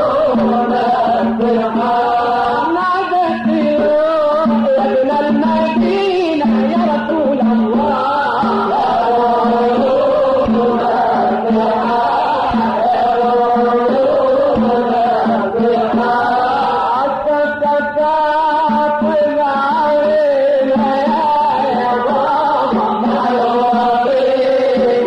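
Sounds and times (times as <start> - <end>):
man singing devotional song: 0.0 - 25.0.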